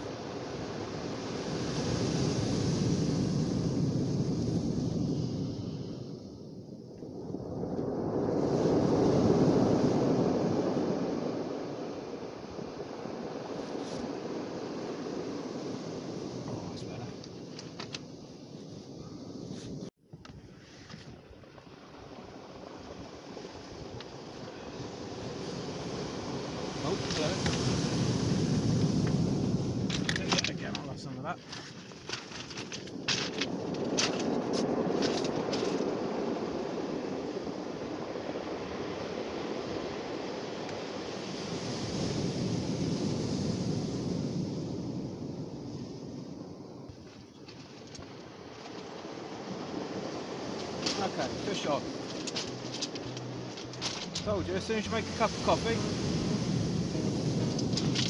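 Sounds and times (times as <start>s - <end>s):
waves breaking on shingle: 24.8s - 29.2s, 29.8s - 36.3s, 46.9s - 58.0s.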